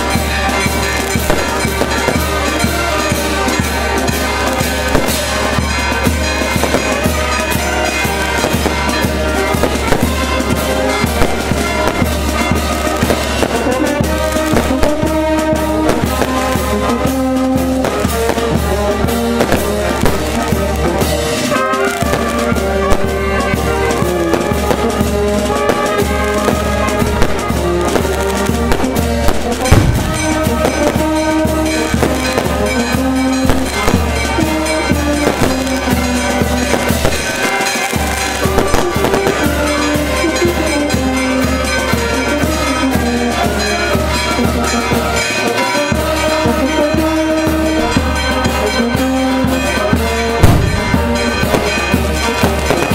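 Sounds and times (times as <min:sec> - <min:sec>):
brass band with drums: 0:00.0 - 0:52.9
fireworks crackling and popping: 0:00.0 - 0:52.9.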